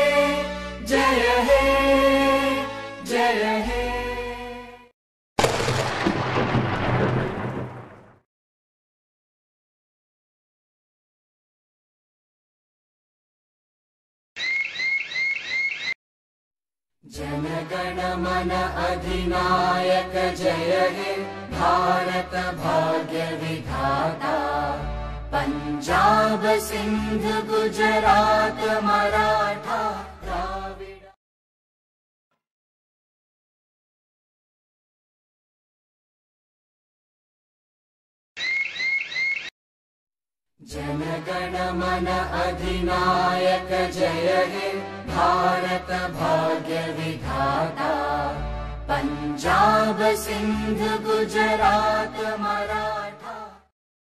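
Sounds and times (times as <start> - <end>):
electronic alarm chirping: 14.4 - 16.0, 38.4 - 39.5.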